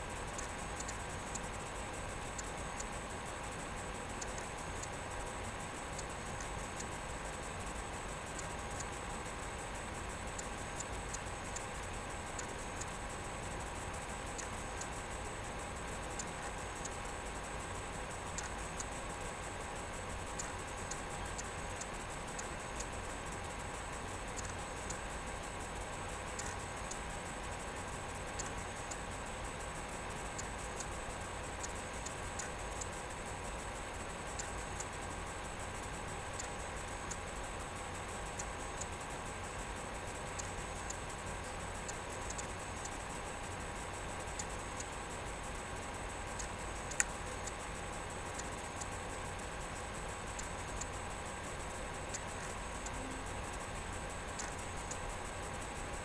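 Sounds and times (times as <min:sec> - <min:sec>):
steady tonal hum: 0:00.0 - 0:56.0.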